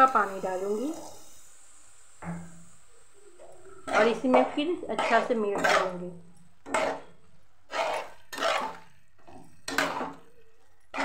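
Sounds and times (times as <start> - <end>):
food sizzling in hot ghee: 0.0 - 11.0.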